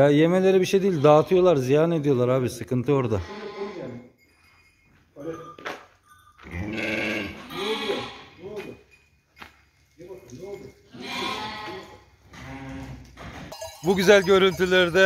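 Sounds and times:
sheep and lambs bleating: 0.6s - 1.6s, 3.2s - 4.1s, 6.4s - 8.4s, 10.9s - 13.1s.

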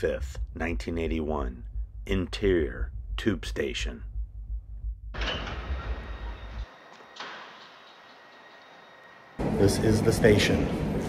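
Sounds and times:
train low rumble: 0.0s - 6.9s.

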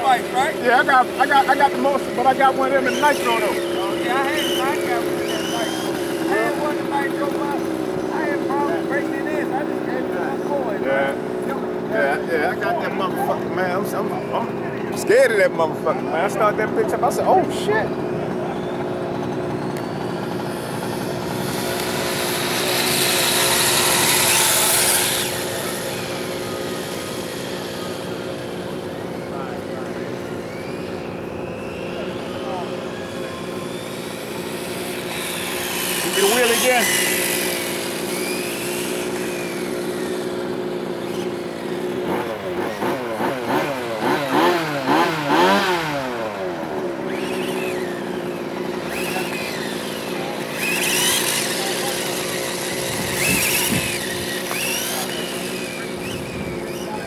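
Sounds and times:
radio-controlled motorcycle motor whine: 0.0s - 57.0s.

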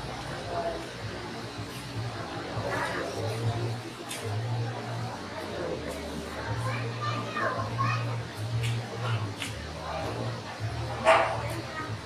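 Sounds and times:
crowd voices in a hall: 0.0s - 12.0s.

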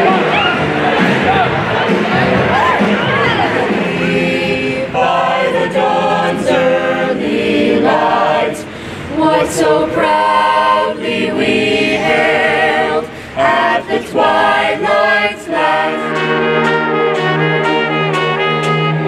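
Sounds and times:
choir singing held chords: 0.0s - 19.0s.

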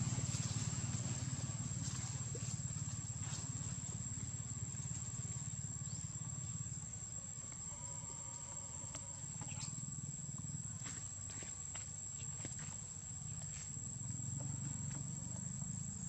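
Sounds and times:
high-pitched insect drone: 0.1s - 16.0s.

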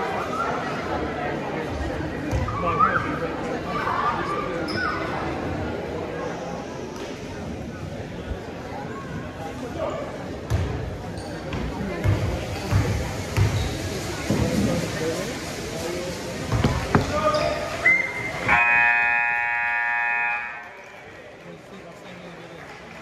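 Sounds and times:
crowd chatter: 0.0s - 23.0s
scoreboard horn: 18.5s - 20.8s.

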